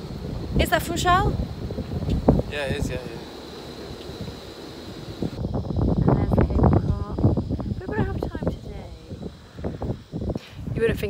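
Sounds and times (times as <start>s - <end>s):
wind blowing across microphone: 0.0s - 11.0s
people talking: 2.5s - 3.3s, 6.0s - 9.2s.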